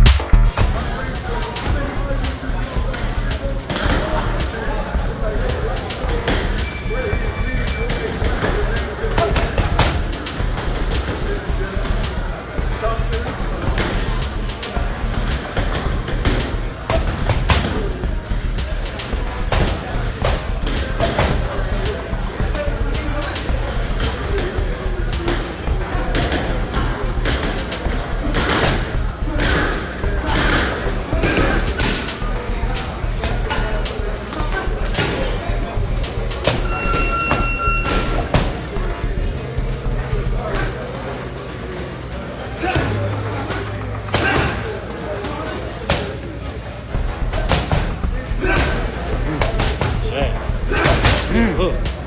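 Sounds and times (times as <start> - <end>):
music with heavy bass beat: 0.0 - 40.7, 46.9 - 52.0
short steady beep: 36.6 - 38.2.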